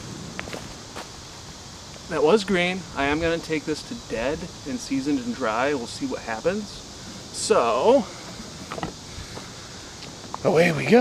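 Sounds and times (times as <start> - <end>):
faint clicks and rustles: 8.2 - 10.5.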